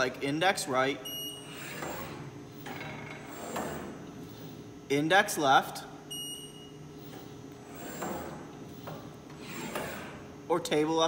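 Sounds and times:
carousel press mechanical whir: 1.2s - 4.8s, 6.2s - 10.6s.

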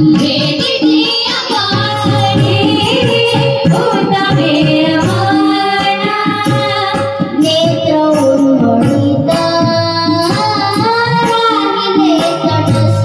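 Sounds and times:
children singing devotional song: 0.0s - 13.0s
hand drum rhythm: 0.0s - 13.0s
harmonium: 0.0s - 13.0s.

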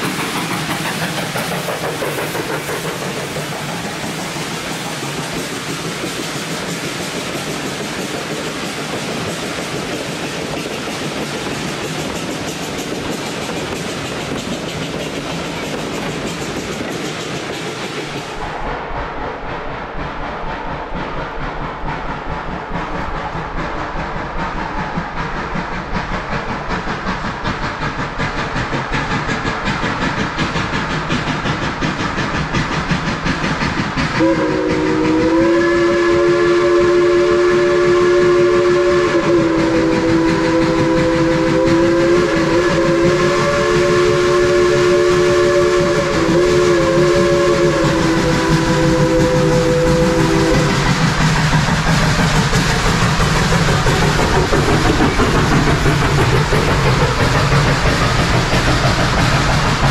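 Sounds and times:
train rolling rumble: 0.0s - 59.9s
wheels clattering on rail: 0.0s - 59.9s
steam locomotive chime whistle: 34.2s - 51.0s.

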